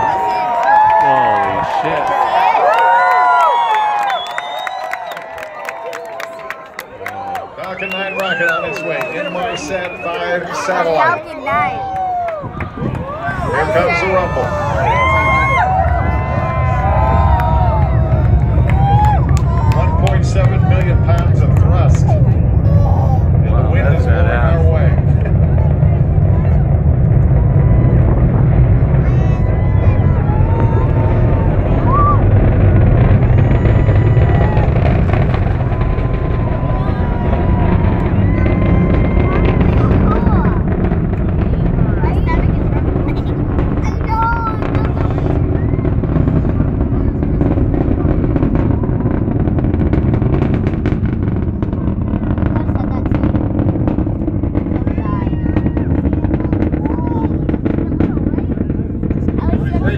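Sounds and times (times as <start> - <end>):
distant rocket engine rumble: 0.0 - 59.9.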